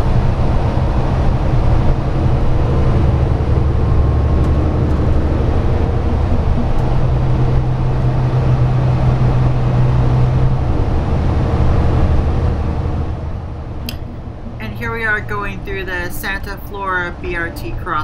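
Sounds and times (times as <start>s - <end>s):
bus engine drone: 0.0s - 18.0s
low hum: 0.0s - 18.0s
road noise: 0.0s - 18.0s.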